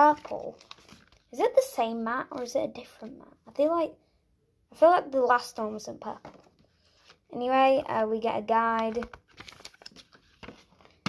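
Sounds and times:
paper rustling and clicks: 0:08.8 - 0:11.0.

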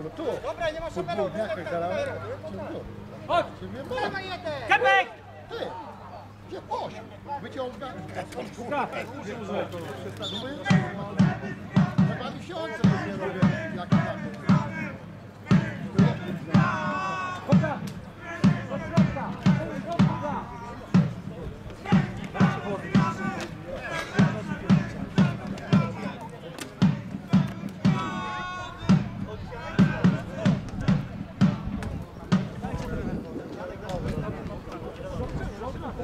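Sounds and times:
crowd chanting: 0:10.6 - 0:32.8
drum beaten in steady rhythm: 0:10.7 - 0:32.8.

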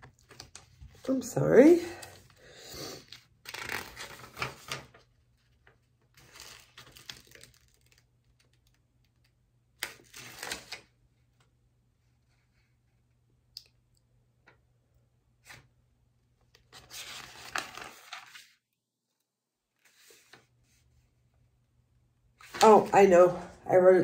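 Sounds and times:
notebook pages turning: 0:00.0 - 0:01.1, 0:03.0 - 0:08.8, 0:09.8 - 0:10.9, 0:16.5 - 0:18.6, 0:22.4 - 0:22.9.

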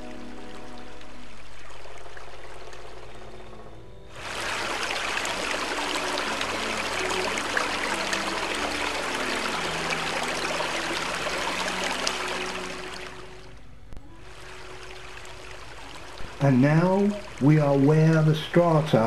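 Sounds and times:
soft background music: 0:00.0 - 0:19.0
stream cascading down rocks: 0:04.1 - 0:13.5, 0:14.2 - 0:19.0.

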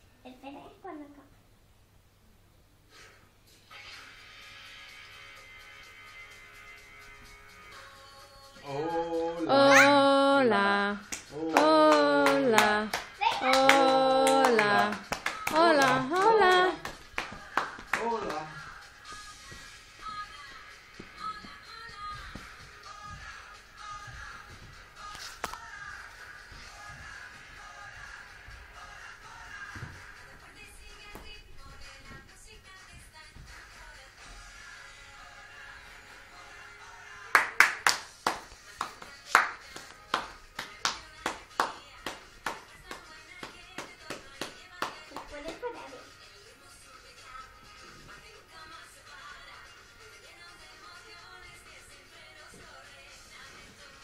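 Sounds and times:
faint music: 0:02.2 - 0:54.0
sharp claps: 0:11.0 - 0:18.6, 0:37.3 - 0:45.7.

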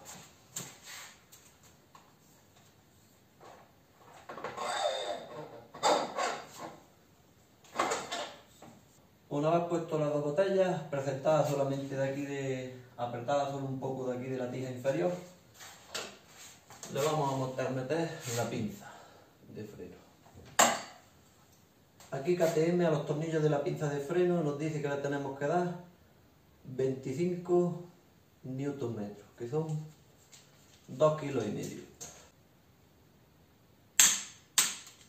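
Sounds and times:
metal scraping and sliding: 0:04.3 - 0:06.8.

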